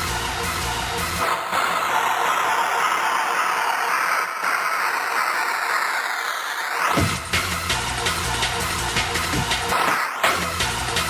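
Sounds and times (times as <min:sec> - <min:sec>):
white-noise sweep with swirl: 0:00.0 - 0:11.0.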